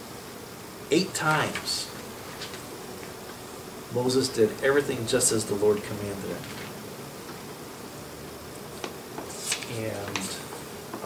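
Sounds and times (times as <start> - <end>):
soft hiss: 0.0 - 11.0
steady low hum: 0.0 - 11.0.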